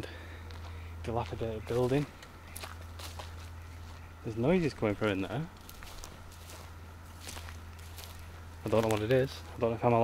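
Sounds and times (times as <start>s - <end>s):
footsteps outdoors: 0.0s - 10.0s
low steady hum: 0.0s - 10.0s.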